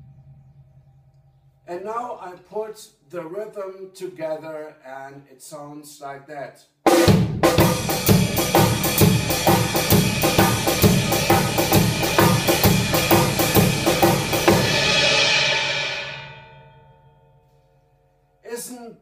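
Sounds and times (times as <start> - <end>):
drum kit shuffle groove: 6.9 - 16.2
cymbal hit ringing: 9.9 - 17.8.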